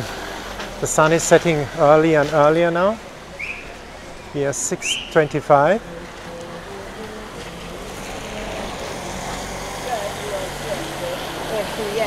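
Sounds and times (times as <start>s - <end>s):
car tyres hissing on wet road: 0.0s - 4.3s, 5.3s - 12.0s.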